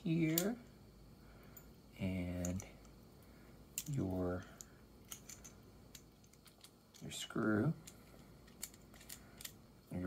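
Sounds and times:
small plastic and metal parts clicking: 3.8s - 9.6s.

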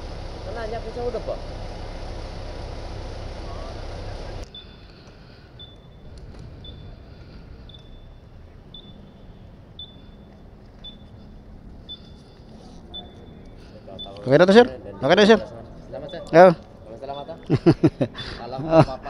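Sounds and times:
outdoor rumble: 0.0s - 19.0s
short high electronic beeps: 7.7s - 11.1s.

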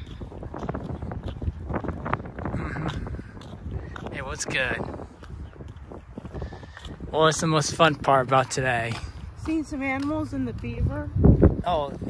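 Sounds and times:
footsteps on paved path: 0.0s - 12.0s
wind buffeting microphone: 0.0s - 12.0s.

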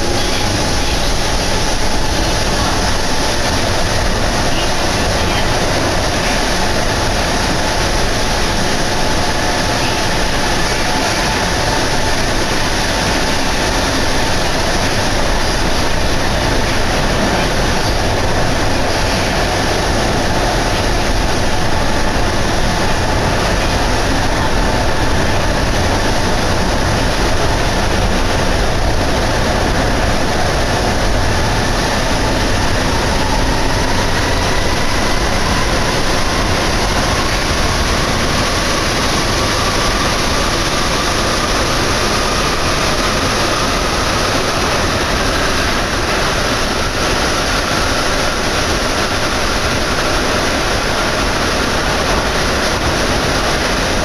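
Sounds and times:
faint train whine: 0.0s - 54.0s
metro train running noise: 0.0s - 54.0s.

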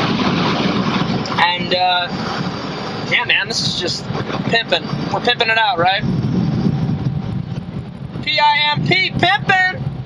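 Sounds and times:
car wash air dryers blowing: 0.0s - 10.0s.

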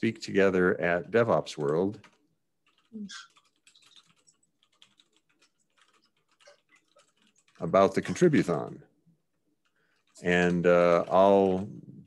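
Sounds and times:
computer keyboard typing: 0.0s - 8.7s, 9.6s - 11.6s.

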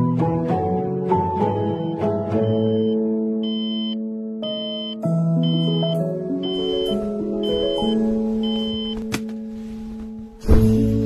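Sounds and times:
soft keyboard chords: 0.0s - 11.0s
digital alarm clock beeping: 1.4s - 9.0s.

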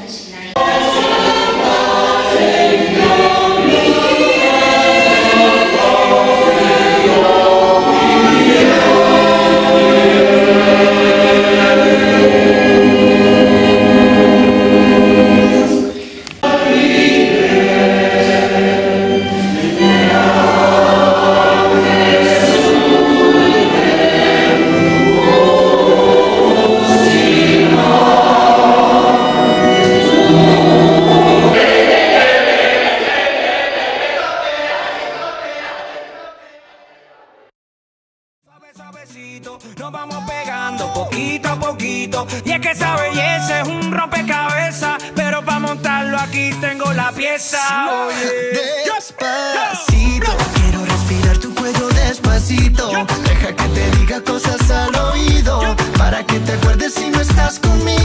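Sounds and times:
choir singing a hymn: 0.0s - 37.5s, 52.2s - 58.0s.

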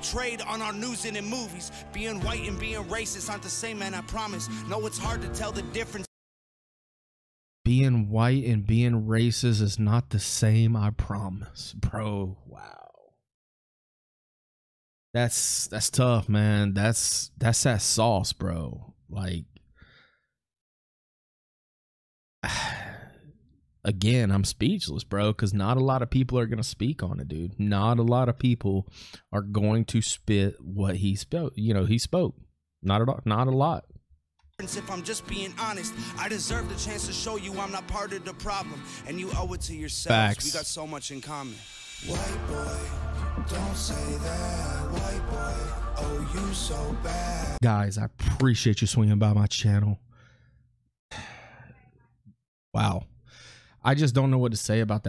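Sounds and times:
man breathing out heavily: 22.4s - 23.2s, 36.0s - 36.2s, 50.2s - 51.7s, 53.2s - 53.8s
man sighing: 22.4s - 23.3s, 51.1s - 51.8s.

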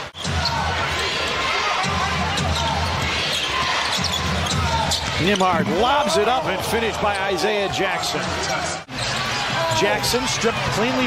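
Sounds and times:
sneakers squeaking: 0.0s - 7.5s, 8.2s - 9.7s.

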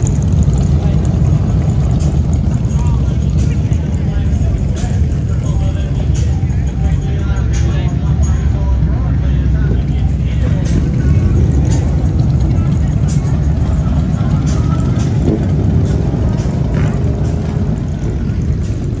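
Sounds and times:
motorcycle engines rumbling: 0.0s - 19.0s
voices: 0.0s - 19.0s
music: 0.6s - 19.0s.

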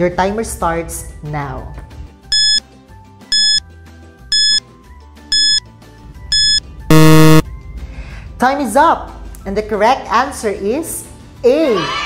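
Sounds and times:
short high electronic beeps: 2.3s - 2.6s, 3.3s - 3.6s, 4.3s - 4.6s, 5.3s - 5.6s, 6.3s - 7.4s
loud low buzzer: 6.4s - 7.4s.

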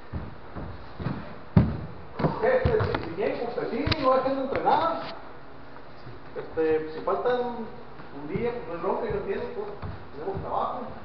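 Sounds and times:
dull thumps on a mat: 0.1s - 3.1s
person talking: 6.4s - 11.0s.

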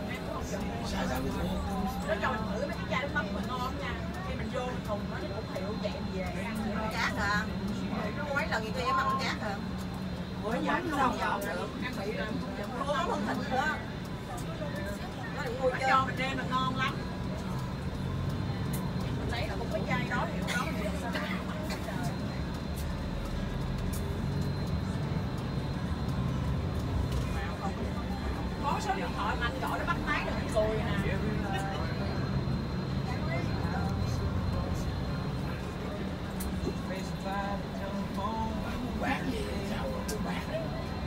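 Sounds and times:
bus engine droning: 0.0s - 41.0s
passengers talking: 0.0s - 41.0s.

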